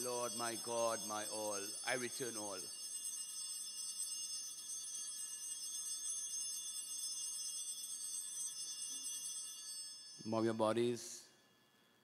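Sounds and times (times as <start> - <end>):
altar bell ringing: 0.0 - 11.8.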